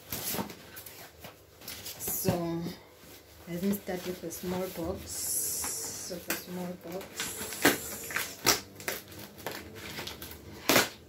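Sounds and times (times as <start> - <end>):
paper packaging tearing and rustling: 0.0 - 2.1, 6.6 - 11.0.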